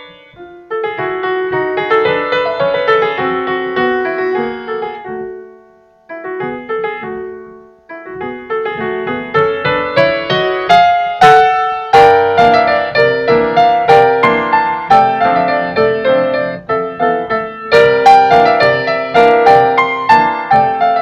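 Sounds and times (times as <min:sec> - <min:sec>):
electronic keyboard piano melody: 0:00.0 - 0:21.0.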